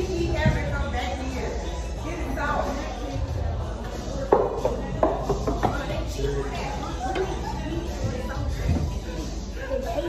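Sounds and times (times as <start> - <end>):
music with singing: 0.0 - 10.0
voices: 0.0 - 10.0.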